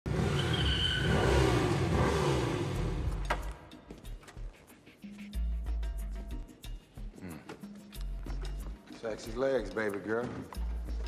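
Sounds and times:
motorcycle engine running: 0:00.1 - 0:03.2.

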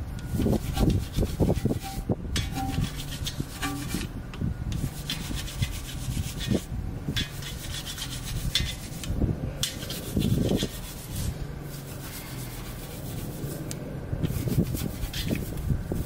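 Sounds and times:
brush scrubbing wheel: 0:00.2 - 0:04.1, 0:04.7 - 0:16.0.

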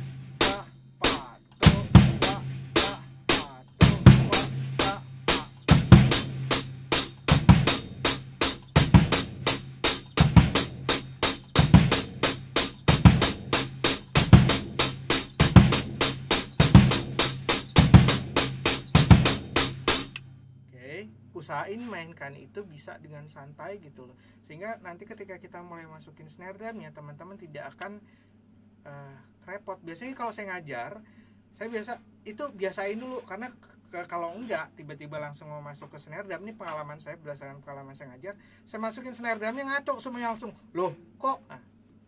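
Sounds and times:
hi-hat strokes: 0:00.0 - 0:20.2
bass drum kicks: 0:01.6 - 0:19.8.

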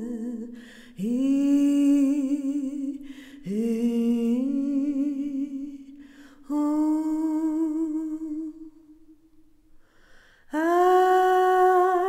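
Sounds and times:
breath: 0:00.5 - 0:01.0, 0:03.0 - 0:03.5, 0:06.0 - 0:06.5, 0:09.7 - 0:10.5.

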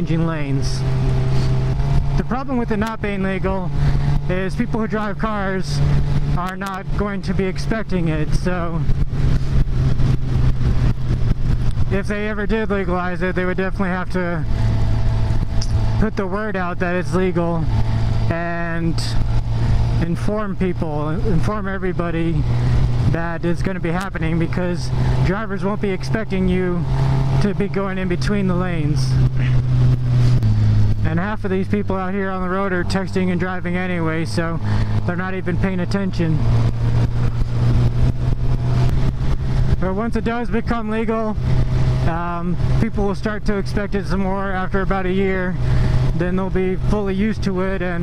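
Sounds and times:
motorcycle engine running: 0:00.0 - 0:48.0
wind rushing over microphone: 0:00.0 - 0:48.0.

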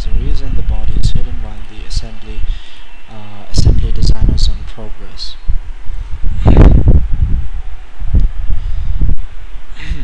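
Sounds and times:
low rumbling on microphone: 0:00.0 - 0:10.0.

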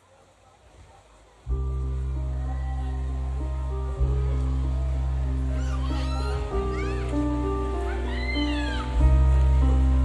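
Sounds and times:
band playing held chords: 0:01.5 - 0:10.0.

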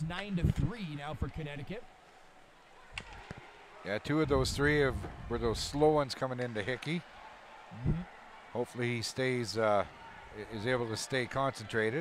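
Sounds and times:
ice rink ambience: 0:00.0 - 0:12.0.

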